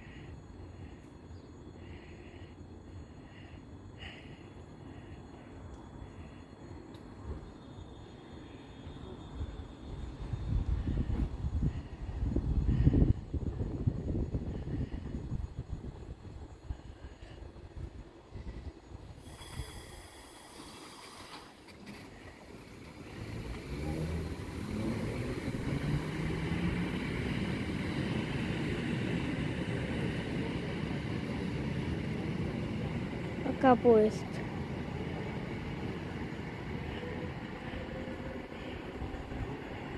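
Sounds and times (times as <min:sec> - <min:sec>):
electric train rumble and motor hum: 0:00.0 - 0:39.9.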